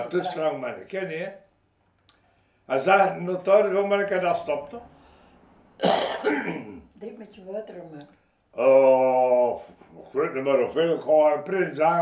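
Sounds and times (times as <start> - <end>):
person coughing: 5.8 - 6.8.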